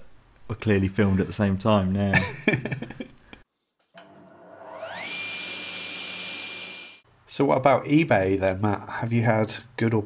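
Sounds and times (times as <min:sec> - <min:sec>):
electric motor whine spinning up: 0:04.0 - 0:07.0.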